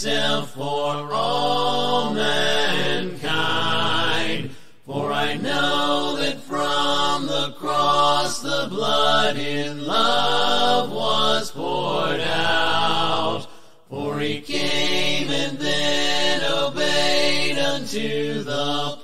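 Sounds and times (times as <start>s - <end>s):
a cappella hymn singing: 0.0s - 19.0s.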